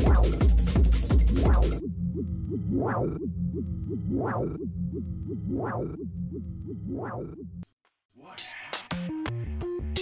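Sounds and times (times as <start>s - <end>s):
low synth bass: 0.0s - 7.6s
synth sweep: 1.4s - 7.6s.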